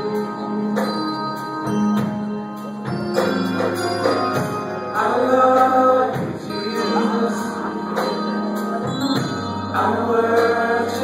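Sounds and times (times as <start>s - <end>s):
male vocal group singing: 0.0s - 1.4s, 4.9s - 11.0s
keyboard accompaniment: 0.0s - 11.0s.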